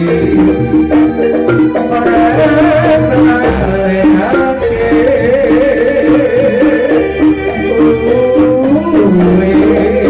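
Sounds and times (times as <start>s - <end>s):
barrel drums: 0.0s - 10.0s
pitched percussion notes: 0.0s - 10.0s.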